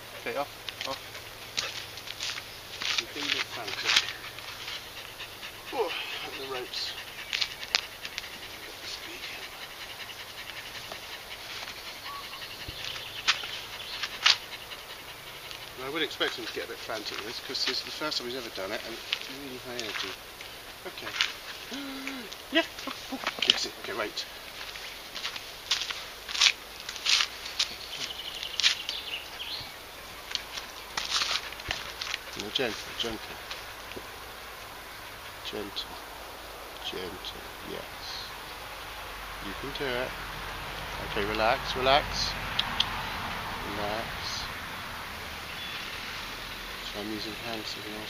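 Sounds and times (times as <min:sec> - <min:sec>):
dog panting fast: 0:00.0 - 0:20.2, 0:31.2 - 0:33.8
outdoor background noise: 0:00.0 - 0:48.0
scuffing and rustling: 0:00.7 - 0:04.9, 0:22.7 - 0:34.1.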